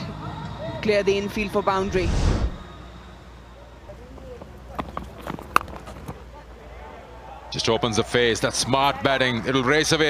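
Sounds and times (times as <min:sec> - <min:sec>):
low ground ambience: 0:00.0 - 0:06.6.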